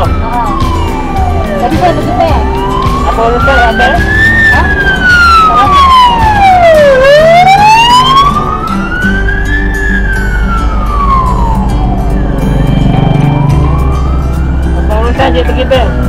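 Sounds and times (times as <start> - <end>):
ambulance siren wailing: 0.0 - 16.0.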